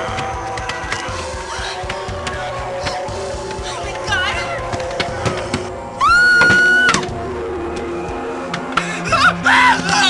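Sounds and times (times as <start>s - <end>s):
dark background music: 0.0s - 10.0s
woman screaming: 6.0s - 7.0s, 9.1s - 10.0s.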